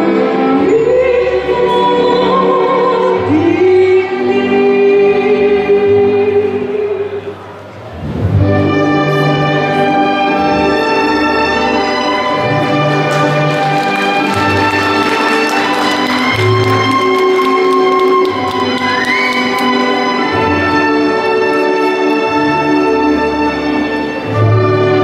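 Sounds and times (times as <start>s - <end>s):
orchestral music: 0.0s - 25.0s
woman singing operatically: 0.3s - 7.0s.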